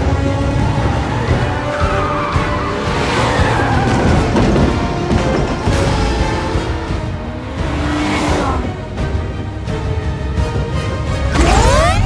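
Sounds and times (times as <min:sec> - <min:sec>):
car engine noise: 0:00.0 - 0:12.0
film score music: 0:00.0 - 0:12.0
car tyres squealing: 0:00.4 - 0:04.9.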